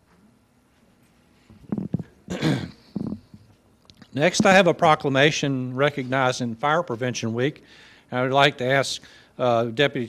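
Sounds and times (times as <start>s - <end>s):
man coughing: 2.3s - 3.3s.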